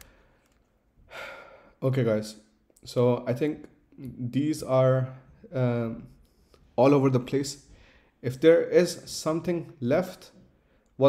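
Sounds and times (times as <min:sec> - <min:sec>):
man breathing out: 0:00.0 - 0:01.8.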